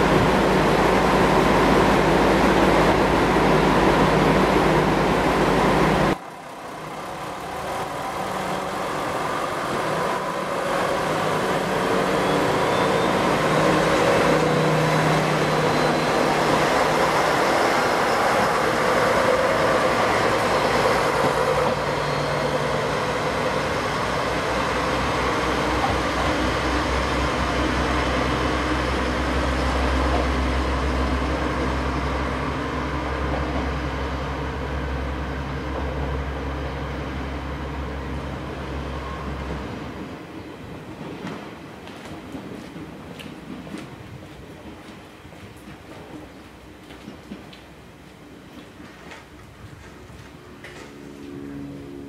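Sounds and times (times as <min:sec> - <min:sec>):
diesel railcar approaching: 0:00.0 - 0:52.0
diesel railcar engine running: 0:00.0 - 0:52.0.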